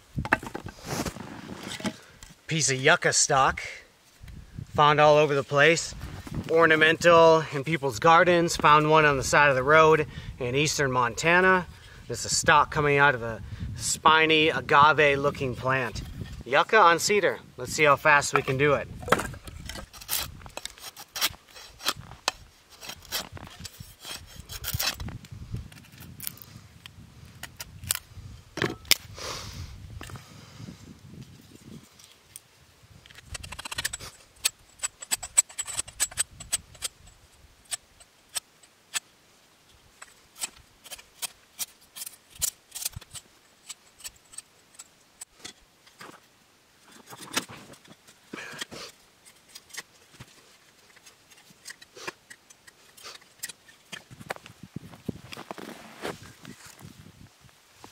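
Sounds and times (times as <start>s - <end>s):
knife scraping wood: 18.4s - 25.1s.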